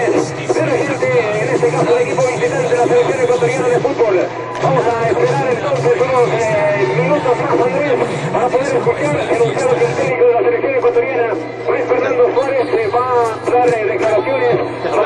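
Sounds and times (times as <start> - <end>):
steady low hum: 0.0 - 15.0
men talking over one another: 0.5 - 15.0.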